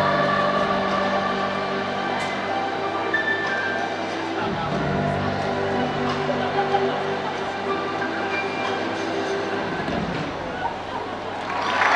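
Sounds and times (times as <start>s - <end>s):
held music chord echoing: 0.0s - 9.9s
crowd murmur: 0.0s - 11.9s.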